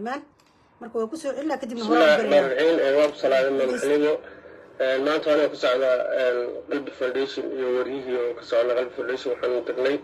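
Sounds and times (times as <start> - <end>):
woman speaking: 0.0 - 2.5, 3.7 - 3.9.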